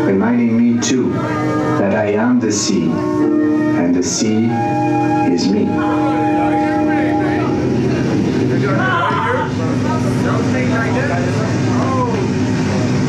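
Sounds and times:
held synthesizer chord: 0.0 - 11.7
low rumbling drone: 0.0 - 13.0
steady low tone: 0.0 - 13.0.

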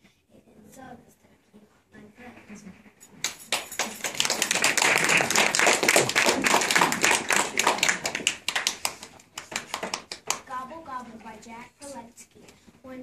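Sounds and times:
audience applauding: 3.5 - 10.3.

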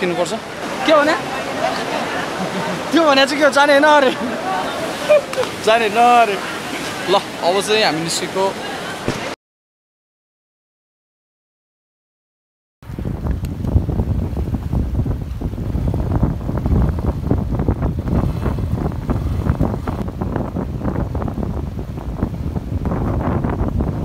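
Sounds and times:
people wading through water: 0.0 - 9.4, 14.6 - 20.0
shallow river rushing: 0.0 - 9.4, 12.8 - 24.0
wind buffeting microphone: 12.8 - 24.0.

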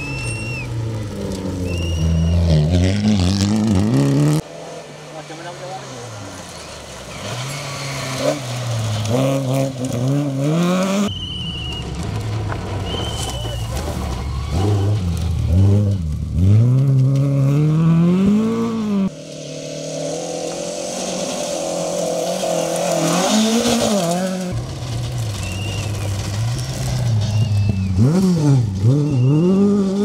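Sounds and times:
rally car engine revving: 0.0 - 30.0
gravel spraying off tyres: 4.5 - 16.7, 19.1 - 30.0.

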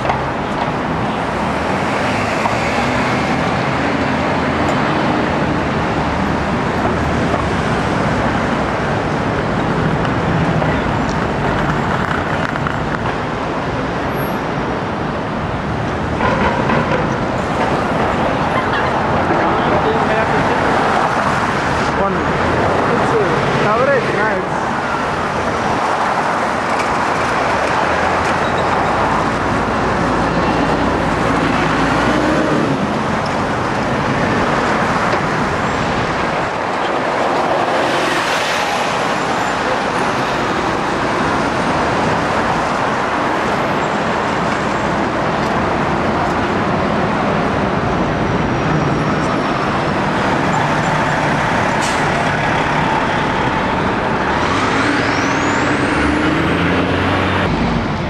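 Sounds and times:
city street traffic: 0.0 - 58.0.

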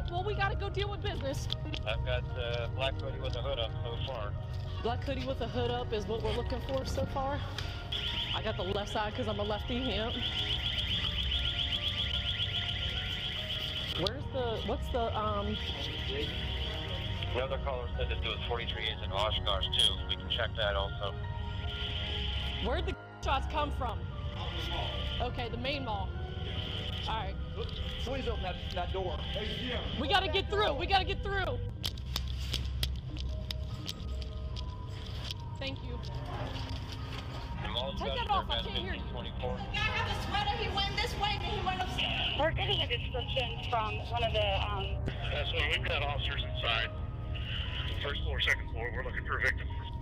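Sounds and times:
sombre drone music: 0.0 - 50.0
rapidly pulsing alarm tone: 4.8 - 17.6, 20.8 - 31.7, 37.7 - 45.8.

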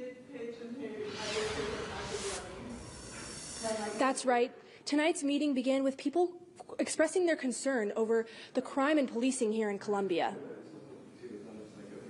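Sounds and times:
burst of hiss: 1.0 - 4.3.

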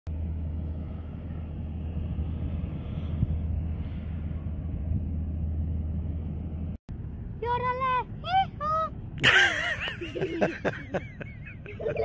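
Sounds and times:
low outdoor rumble: 0.1 - 12.0.

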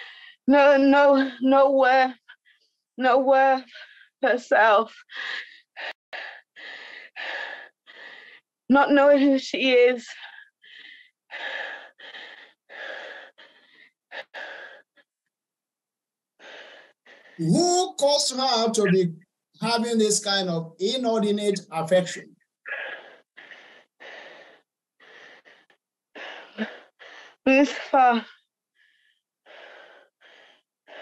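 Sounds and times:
woman breathing hard: 0.0 - 0.4, 5.0 - 8.6, 10.1 - 15.2, 16.4 - 17.4, 22.7 - 31.0.

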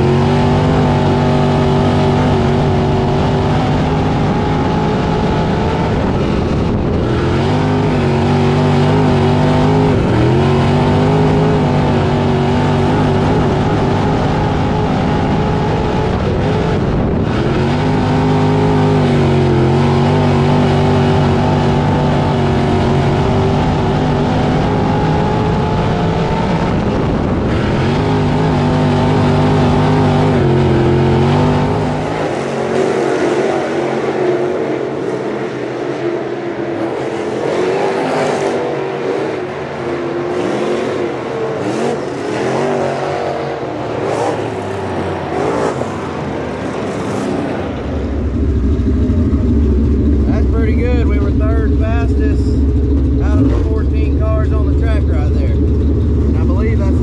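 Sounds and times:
race car engine revving: 0.0 - 57.0.

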